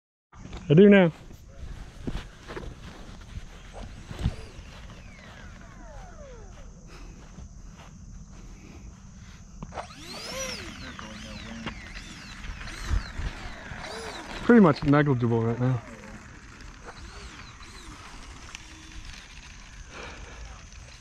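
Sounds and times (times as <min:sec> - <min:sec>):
electric ducted fans whining: 0:00.7 - 0:21.0.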